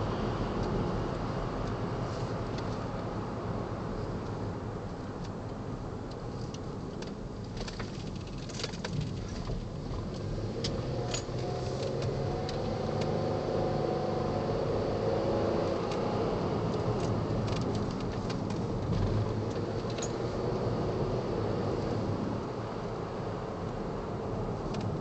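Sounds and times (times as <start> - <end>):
engine and road noise: 0.0 - 25.0
small clicks and rattles: 6.4 - 10.2.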